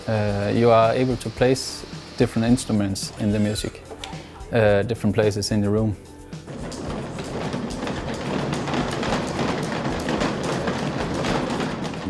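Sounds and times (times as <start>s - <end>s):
roller conveyor rattling: 0.0s - 3.7s, 6.4s - 12.0s.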